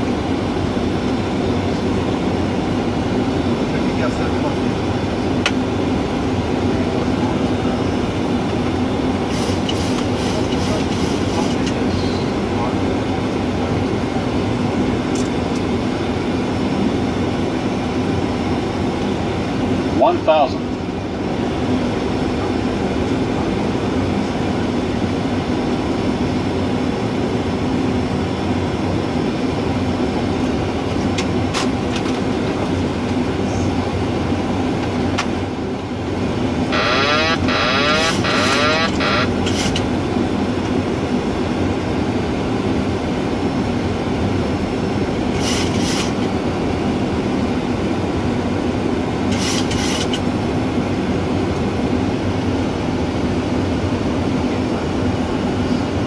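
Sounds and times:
aircraft engine noise: 0.0s - 56.0s.

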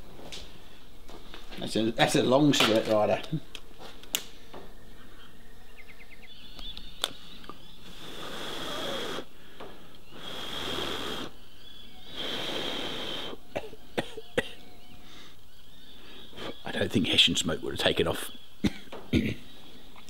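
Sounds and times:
person blowing on embers: 7.8s - 13.6s.

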